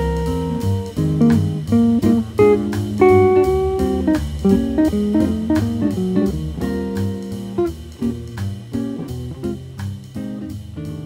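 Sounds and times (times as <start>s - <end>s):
jazz guitar chords: 0.0s - 11.0s
low bass line: 0.0s - 11.0s.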